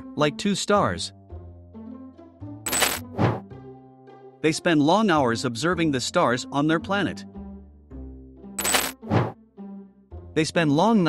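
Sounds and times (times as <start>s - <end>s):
soft background music: 0.0s - 11.0s
short swish: 3.1s - 3.4s, 9.0s - 9.4s.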